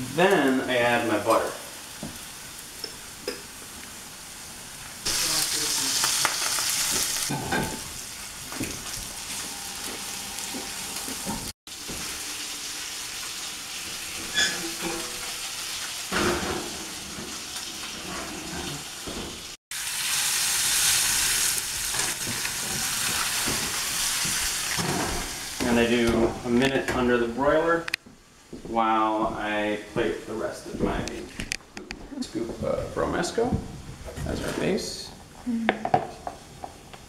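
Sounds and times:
fish sizzling in a pan: 1.3s - 25.6s.

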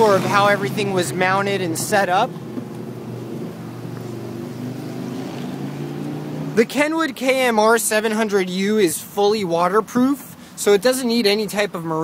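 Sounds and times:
vehicle engine running at low revs: 0.0s - 6.6s.

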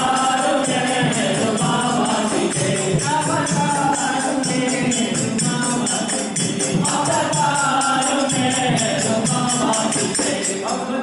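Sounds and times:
group devotional singing: 0.0s - 11.0s
jingling percussion: 0.0s - 11.0s.

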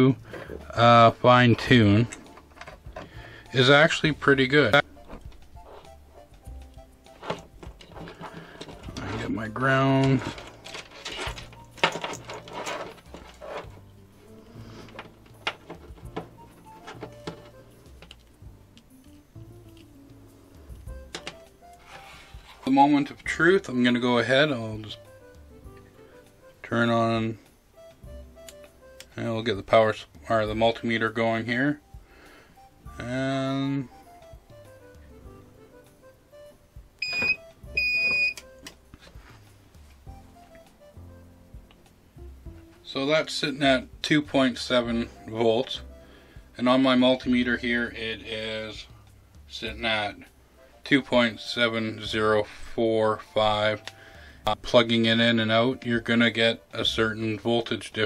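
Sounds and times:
quiet background music: 0.0s - 58.0s
electronic beeps: 37.0s - 38.4s.

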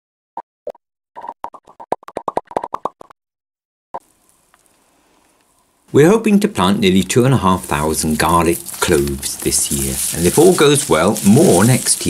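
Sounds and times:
faint hiss: 4.0s - 12.0s.

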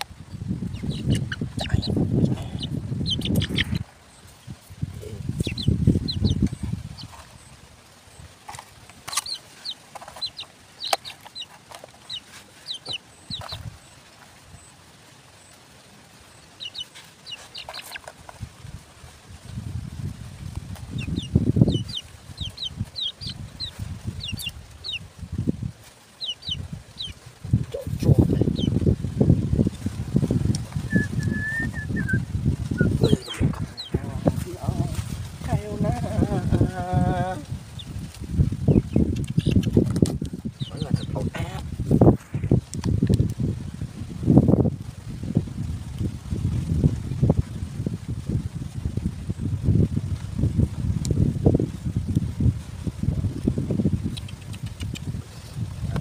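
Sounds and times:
birds chirping: 0.0s - 15.6s, 16.2s - 18.4s, 20.7s - 28.9s, 29.6s - 42.6s
whistled note: 30.9s - 32.2s.

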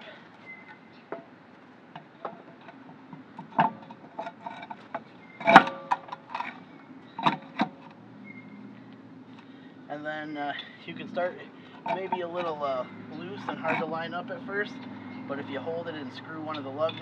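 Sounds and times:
steel wheel clunking against hub: 0.5s - 8.7s, 11.6s - 17.0s.

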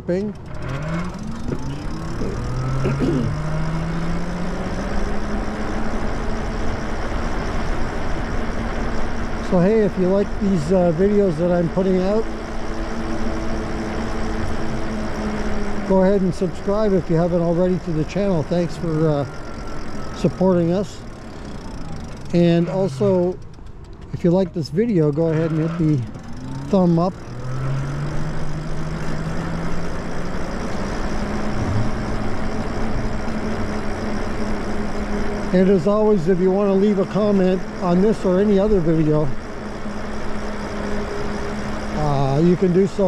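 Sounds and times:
road noise: 0.0s - 43.0s
wind: 0.0s - 43.0s
electric motor hum: 0.2s - 43.0s.

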